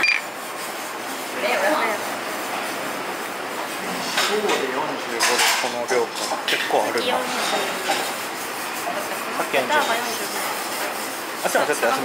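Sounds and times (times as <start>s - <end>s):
people talking: 11.4s - 12.0s.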